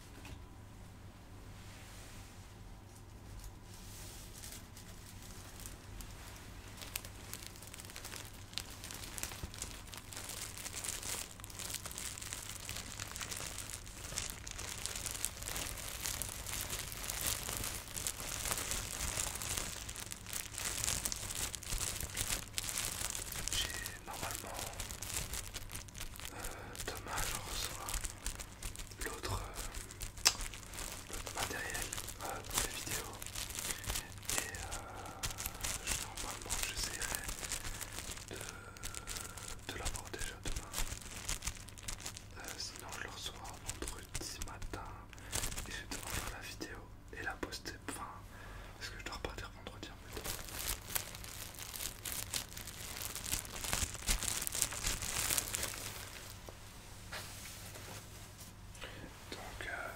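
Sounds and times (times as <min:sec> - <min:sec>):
plastic packaging crinkling: 0:03.3 - 0:48.1, 0:48.8 - 0:58.3, 0:59.3 - 0:59.9.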